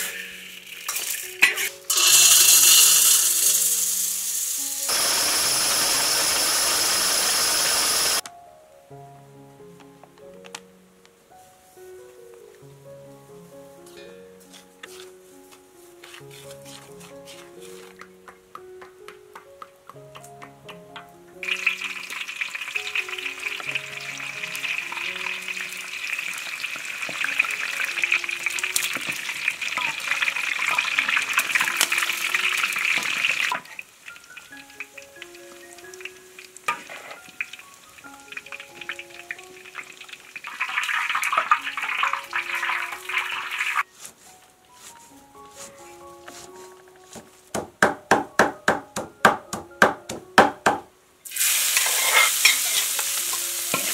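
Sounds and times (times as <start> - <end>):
fish sizzling in hot oil: 0.0 - 8.2, 21.4 - 43.9, 51.2 - 53.9.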